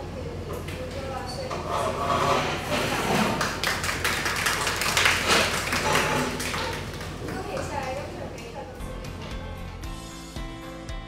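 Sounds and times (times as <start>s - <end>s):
people applauding: 3.3s - 8.2s.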